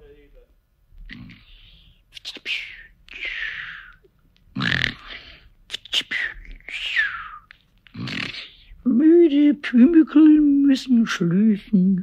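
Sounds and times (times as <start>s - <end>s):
cartoon snoring: 4.6s - 5.2s, 7.9s - 8.7s.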